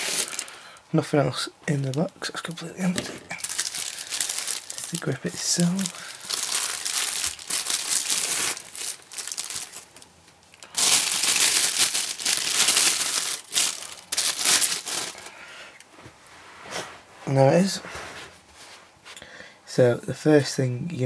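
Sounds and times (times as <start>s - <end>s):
plastic bag crinkling: 0.0s - 0.6s, 1.8s - 15.4s.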